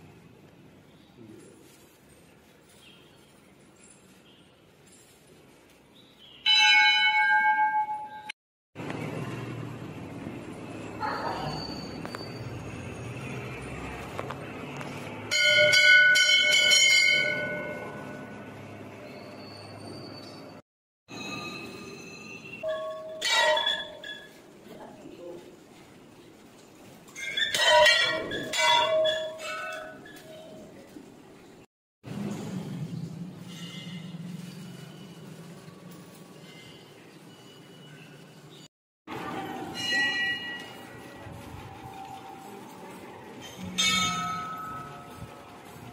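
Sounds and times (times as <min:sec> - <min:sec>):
temple bell ringing: 0:06.5 - 0:08.3, 0:15.3 - 0:19.6, 0:21.1 - 0:24.2, 0:39.1 - 0:45.8.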